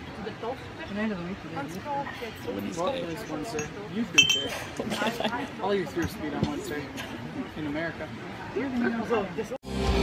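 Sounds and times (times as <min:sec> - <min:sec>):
glass clinking on table: 0:03.4 - 0:04.7.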